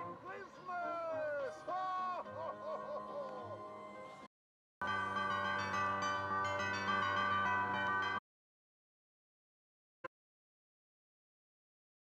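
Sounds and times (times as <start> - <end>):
christmas bells chiming: 4.8 - 8.2.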